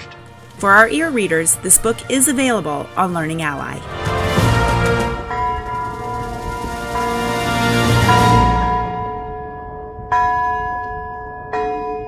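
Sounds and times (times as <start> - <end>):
bell ringing: 5.2 - 11.0.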